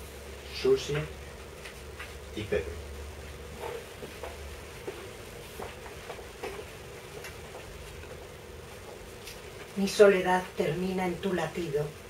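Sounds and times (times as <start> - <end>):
steady low hum: 0.0 - 12.0
faint shuffles and knocks: 3.0 - 10.1.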